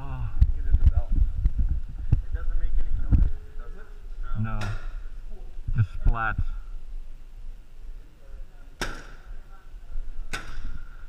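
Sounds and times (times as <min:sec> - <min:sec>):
paintball marker shots: 0:08.8 - 0:09.3, 0:10.3 - 0:10.8.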